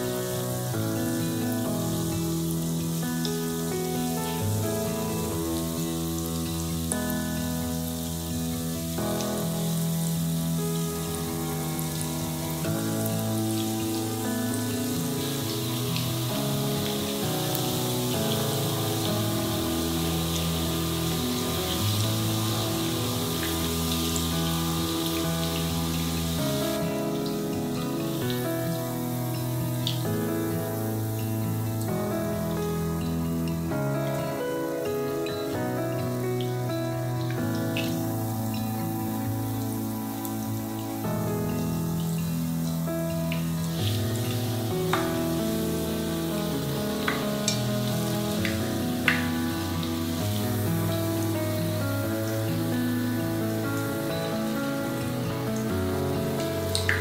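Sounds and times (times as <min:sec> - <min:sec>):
background music with chords: 0:00.0 - 0:57.0
oil sizzling in a pan: 0:00.0 - 0:57.0.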